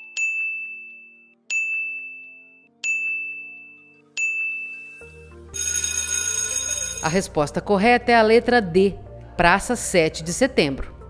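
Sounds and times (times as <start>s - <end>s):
electronic ringing bell: 0.0s - 7.2s
background music: 0.0s - 11.0s.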